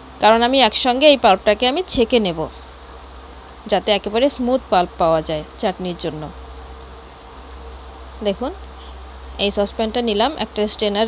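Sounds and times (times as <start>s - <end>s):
steady buzzing hum: 0.0s - 11.0s.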